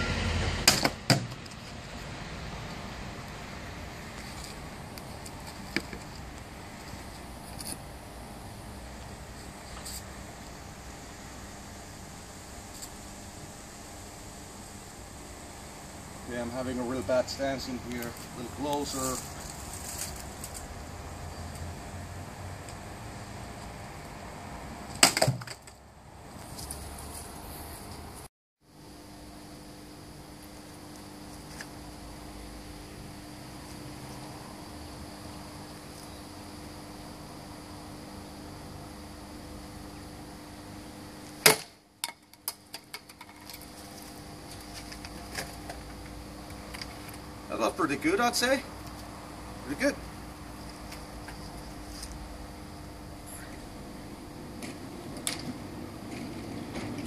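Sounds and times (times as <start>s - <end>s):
blade chopping into wood: 41.4s - 41.7s.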